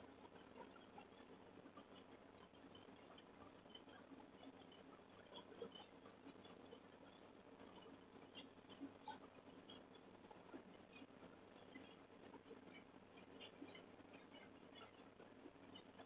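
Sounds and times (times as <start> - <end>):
faint ticks: 0.0 - 16.0.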